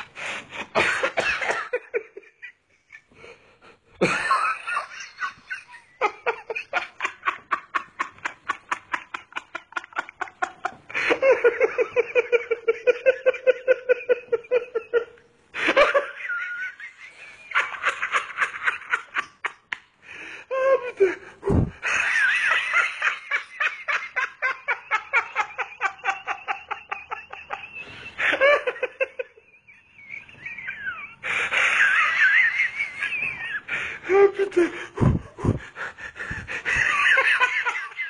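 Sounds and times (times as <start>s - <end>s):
person wheezing laugh: 20.5s - 22.5s, 33.2s - 37.4s
person laughing: 20.5s - 38.0s.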